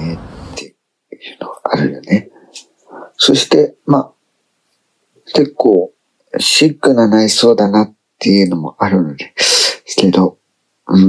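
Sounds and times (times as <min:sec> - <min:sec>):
man talking softly: 0:00.0 - 0:04.1.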